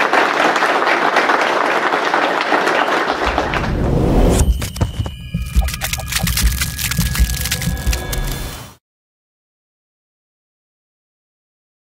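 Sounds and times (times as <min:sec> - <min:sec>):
rapid sharp crackling clicks: 0:05.4 - 0:08.6.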